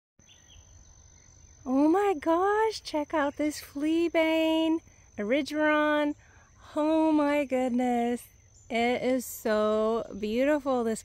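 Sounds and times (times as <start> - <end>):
meadow ambience: 0.2 - 11.0.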